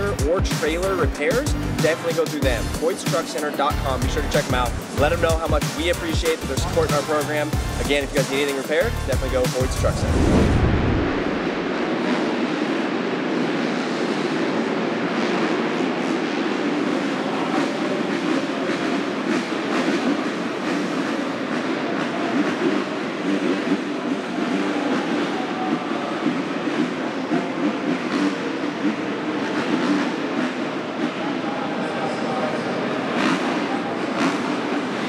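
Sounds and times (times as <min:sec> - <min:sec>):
dirt bike engines rumbling: 0:00.0 - 0:35.0.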